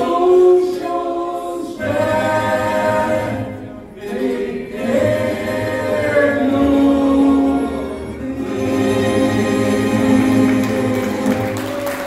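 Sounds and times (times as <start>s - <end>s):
group singing in harmony: 0.0s - 12.0s
string orchestra playing: 1.8s - 12.0s.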